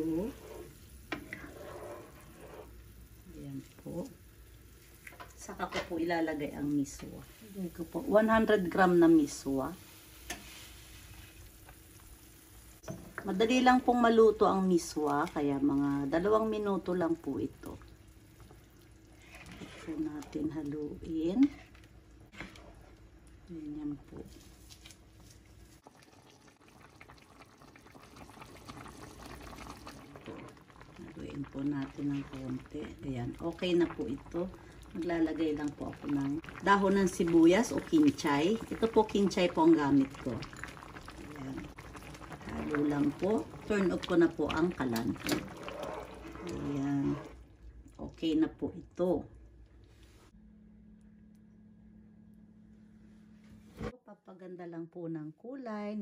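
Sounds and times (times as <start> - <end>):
soup bubbling at a simmer: 0.0 - 5.5, 6.3 - 50.3.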